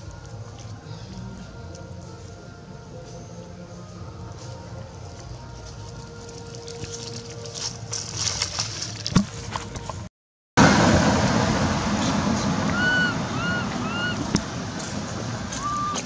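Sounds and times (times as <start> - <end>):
steady outdoor noise: 0.0 - 16.0
dry leaves crackling: 3.8 - 9.9
chirp-like bird calls: 12.7 - 14.3, 15.6 - 16.0.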